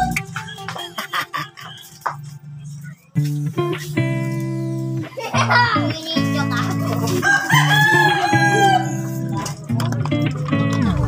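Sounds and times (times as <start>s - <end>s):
background music: 0.0s - 11.0s
rooster crowing: 7.1s - 9.3s.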